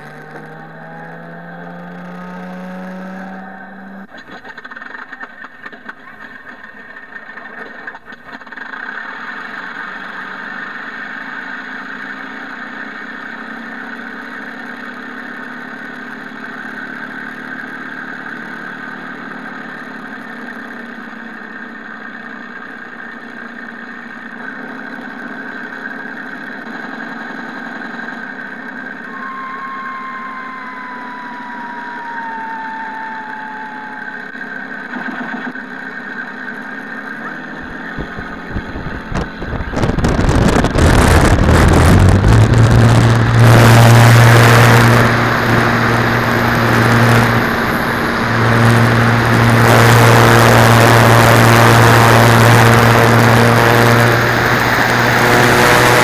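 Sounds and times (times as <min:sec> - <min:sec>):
piston engine idling through speakers: 0:04.0 - 0:55.2
thin falling whistle: 0:29.1 - 0:34.4.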